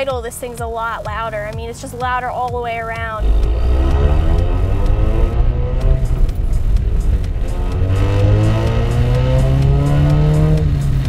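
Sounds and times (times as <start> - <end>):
background music with light beat: 0.0 - 11.0
car engine accelerating hard: 3.1 - 11.0.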